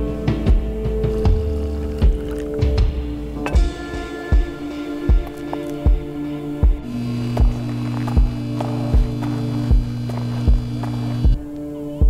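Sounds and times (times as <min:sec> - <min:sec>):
low synth drone: 0:00.0 - 0:12.0
deep heartbeat-like bass thump: 0:05.9 - 0:11.4.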